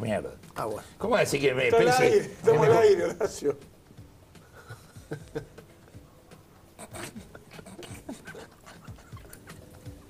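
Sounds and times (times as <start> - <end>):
stifled breathy laughter: 4.4 - 6.0, 6.8 - 10.0.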